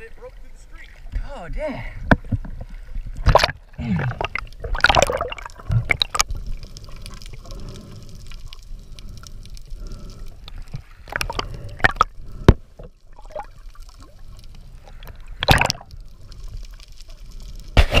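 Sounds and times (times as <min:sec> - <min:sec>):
water sloshing and gurgling: 0:00.0 - 0:18.0
sharp splashes: 0:03.2 - 0:06.3, 0:15.4 - 0:15.9.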